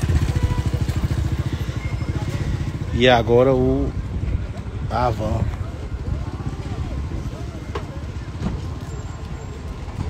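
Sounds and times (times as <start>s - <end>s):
engine idling: 0.0s - 3.8s.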